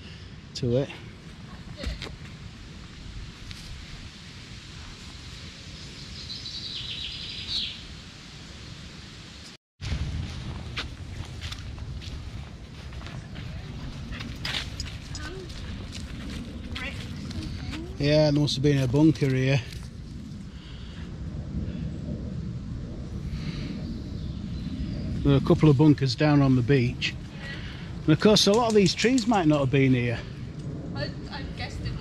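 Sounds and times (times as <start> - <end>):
bird song: 5.8 - 7.9, 23.9 - 25.5
footsteps on dirt path: 9.8 - 20.0
low rumble on microphone: 9.8 - 32.0.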